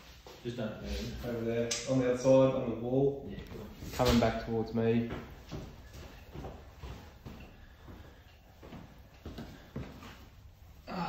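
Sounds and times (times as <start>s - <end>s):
scuffs on concrete floor: 5.0s - 10.5s.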